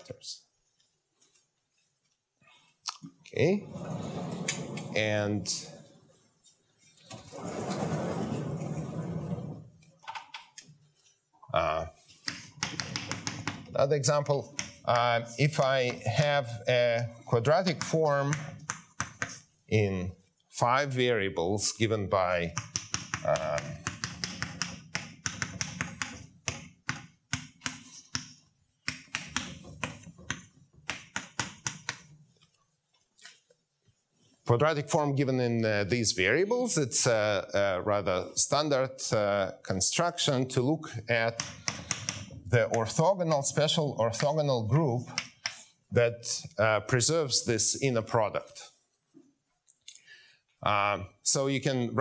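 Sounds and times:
sliding blackboard panel rumbling: 7.2s - 9.7s
chalk tapping and scratching: 12.0s - 16.4s, 17.5s - 19.6s, 22.2s - 34.0s, 41.2s - 43.1s, 45.0s - 45.8s.

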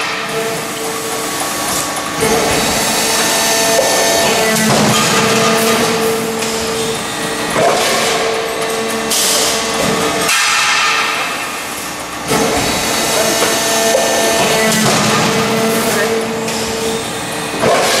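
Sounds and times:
hydraulic hum: 0.0s - 18.0s.

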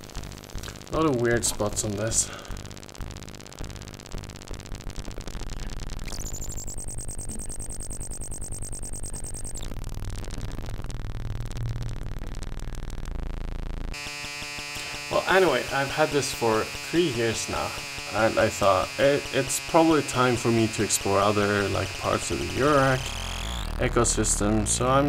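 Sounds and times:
pulsing electronic buzz: 0.0s - 25.0s.

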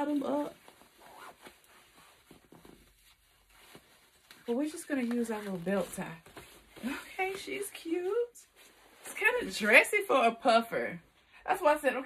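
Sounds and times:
zipper being pulled up: 0.0s - 9.5s.

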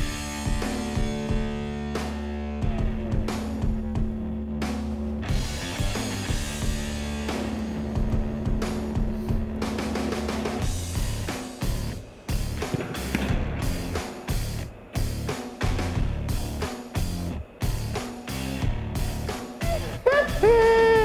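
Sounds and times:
music with drums and a beat: 0.0s - 21.0s.

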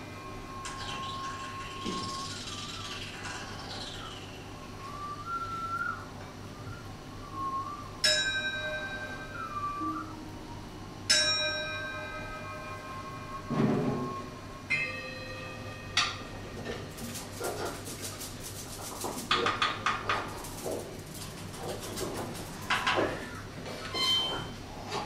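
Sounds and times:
hand bells ringing: 8.0s - 9.4s, 11.1s - 13.5s, 14.7s - 16.3s.

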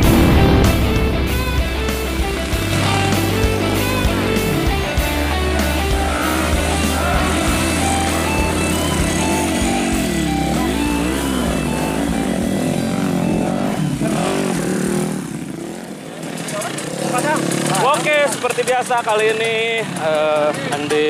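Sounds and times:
background music with steady beat: 0.0s - 14.5s
dirt bike engine revving: 0.0s - 21.0s.

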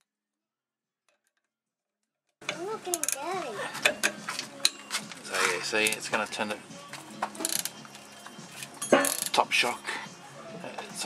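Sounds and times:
wrench clicking: 2.9s - 3.2s, 7.4s - 8.0s, 8.6s - 9.4s
man's voice: 5.2s - 7.2s, 9.3s - 11.0s.

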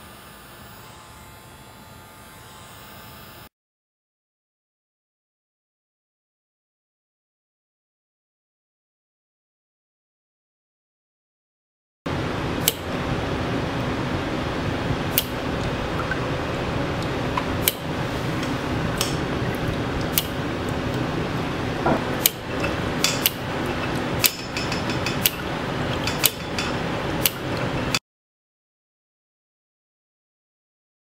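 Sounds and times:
lab apparatus humming: 12.1s - 28.0s.

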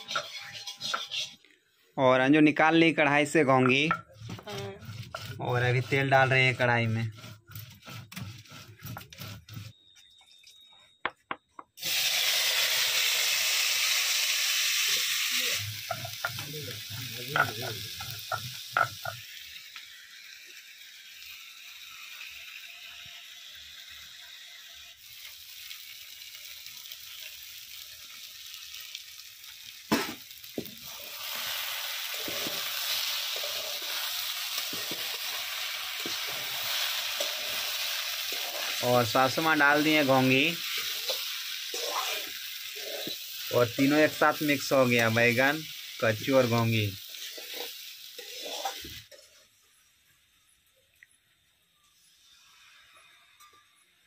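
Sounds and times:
vegetables sizzling in hot oil: 0.0s - 1.4s, 11.8s - 50.5s
stirring clicks and scrapes: 3.6s - 9.8s, 33.3s - 38.8s, 47.2s - 49.3s.

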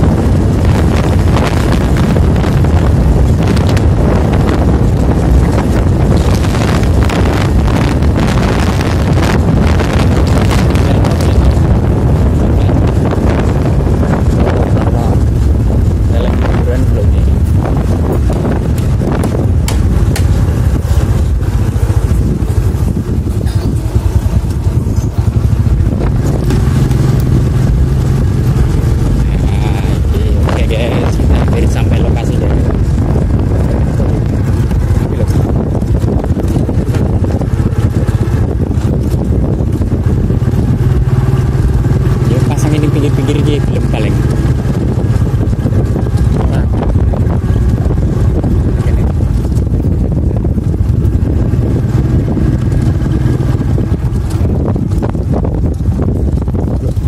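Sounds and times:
vehicle engine running: 0.0s - 57.0s
wind buffeting microphone: 0.0s - 57.0s.

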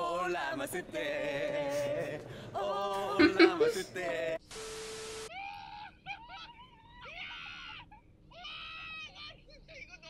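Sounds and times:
short steady-tone hiss: 4.4s - 5.3s
man screaming in fright: 5.3s - 9.3s.

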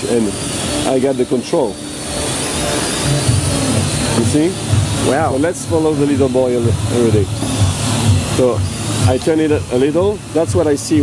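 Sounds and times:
low hum: 0.0s - 10.9s
drone rotors whining: 0.0s - 11.0s.

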